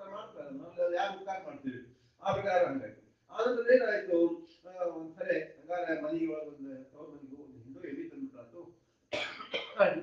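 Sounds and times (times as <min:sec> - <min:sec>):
man speaking: 0:00.0 - 0:08.6, 0:09.8 - 0:10.0
man coughing and clearing throat: 0:09.1 - 0:10.0.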